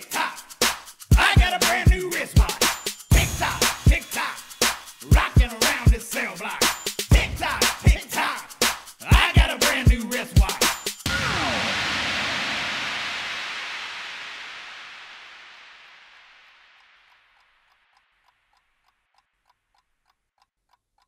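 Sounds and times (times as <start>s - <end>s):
rushing noise with falling sweep: 11.1s - 17.2s.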